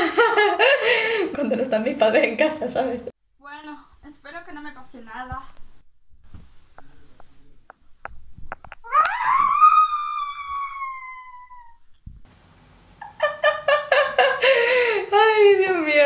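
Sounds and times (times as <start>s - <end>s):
young woman laughing: 0.0s - 1.2s, 13.0s - 15.2s
girl screaming: 8.8s - 11.8s.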